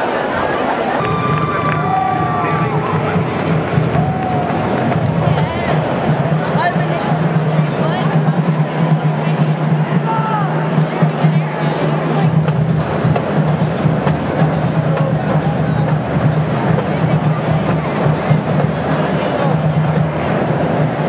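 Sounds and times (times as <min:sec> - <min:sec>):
crowd chatter: 0:00.0 - 0:21.0
music with sharp percussion: 0:01.0 - 0:21.0.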